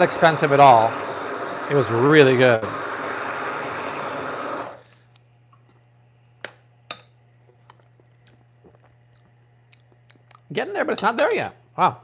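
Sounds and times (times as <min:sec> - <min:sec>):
immersion blender running: 0:00.0 - 0:05.0.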